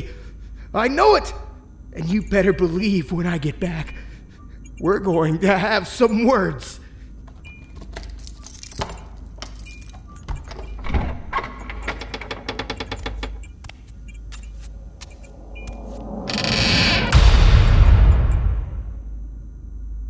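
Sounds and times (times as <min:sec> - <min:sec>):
keys jangling: 0:07.2 - 0:15.8
rattling ticks: 0:11.5 - 0:16.2.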